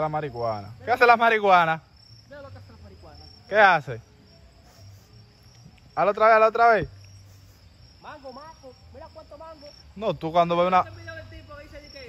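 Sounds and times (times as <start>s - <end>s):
insects chirring: 0.0s - 12.0s.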